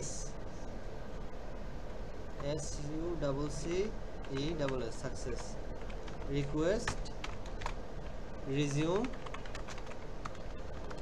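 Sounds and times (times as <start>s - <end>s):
computer keyboard typing: 4.2s - 11.0s.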